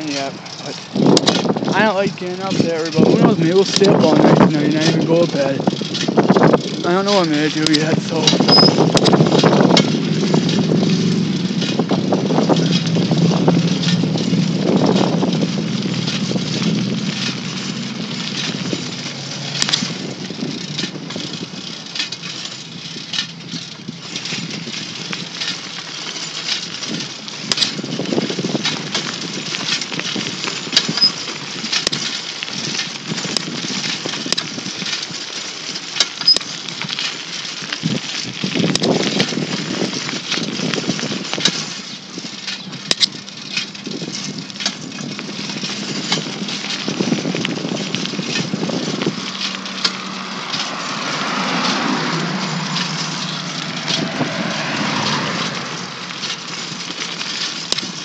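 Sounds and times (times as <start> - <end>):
engine running: 0.0 - 58.0.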